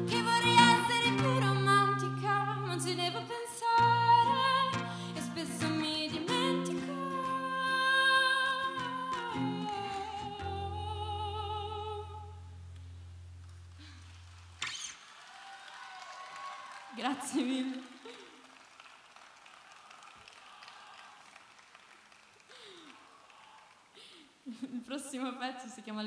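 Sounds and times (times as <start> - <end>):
woman singing with vibrato: 0.0 - 12.5, 17.0 - 18.0
light applause: 13.4 - 24.3.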